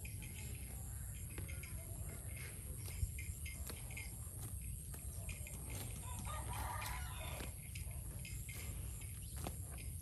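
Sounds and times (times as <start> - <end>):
cow tearing grass: 2.4 - 10.0
rooster crowing: 6.0 - 7.5.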